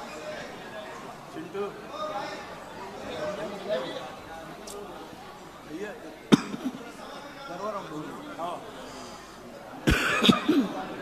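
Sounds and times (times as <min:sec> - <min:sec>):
person coughing: 0:09.8 - 0:10.8.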